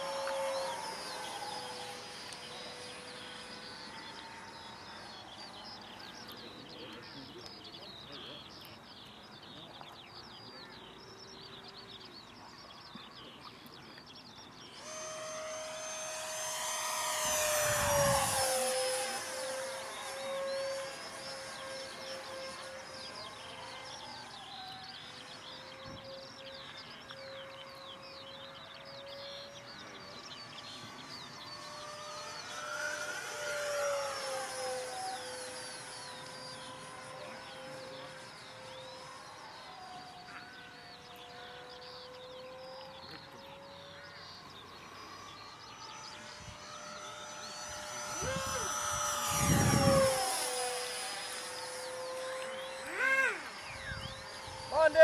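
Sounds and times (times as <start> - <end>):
model jet fan whine: 0.0 - 55.0.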